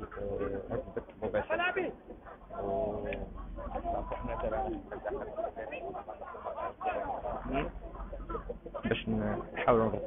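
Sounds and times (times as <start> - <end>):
crowd talking and calling out: 0.0 - 10.0.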